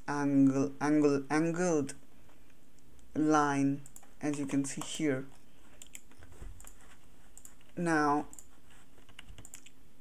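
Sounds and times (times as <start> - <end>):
person speaking: 0.0 - 2.0, 3.1 - 5.9, 6.8 - 8.6
low background hiss: 0.0 - 10.0
computer clicks: 5.8 - 9.8.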